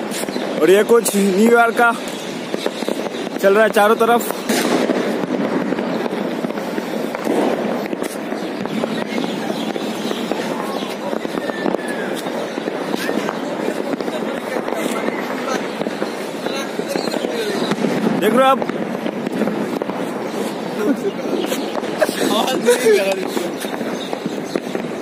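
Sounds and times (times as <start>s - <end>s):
faint fireworks whistles: 0.0s - 25.0s
fireworks crackling: 0.0s - 25.0s
people's voices: 0.0s - 25.0s.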